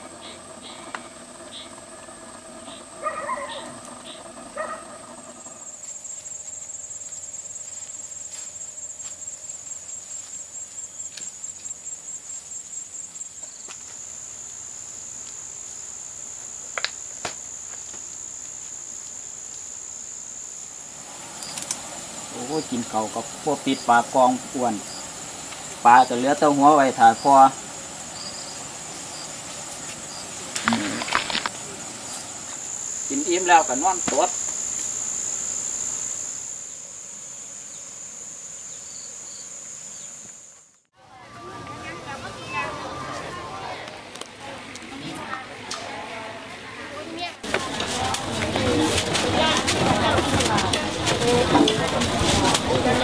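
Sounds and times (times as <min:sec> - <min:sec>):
insects droning: 0:00.0 - 0:53.0
rural background noise: 0:00.0 - 0:53.0.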